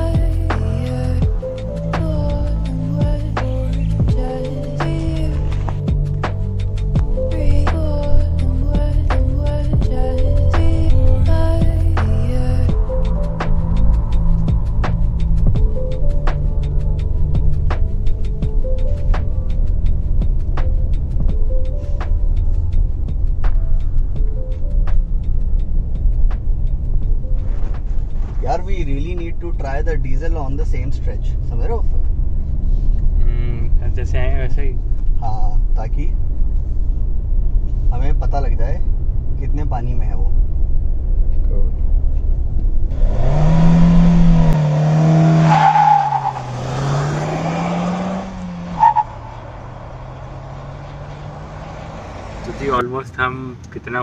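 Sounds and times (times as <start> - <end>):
road and engine rumble in car: 0.0 - 54.0
man talking: 28.4 - 31.8, 33.2 - 36.2, 52.5 - 54.0.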